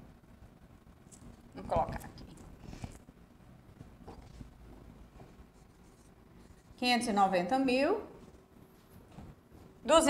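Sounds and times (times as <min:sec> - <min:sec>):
woman speaking: 0:01.6 - 0:02.4, 0:06.8 - 0:08.2.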